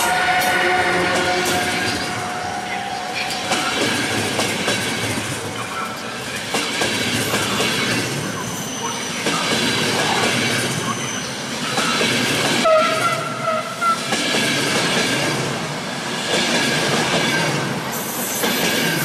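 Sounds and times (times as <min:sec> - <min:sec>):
train wheels clattering over rail joints: 0:06.3 - 0:08.3
faint high wheel squeal: 0:08.3 - 0:09.5, 0:10.8 - 0:12.0.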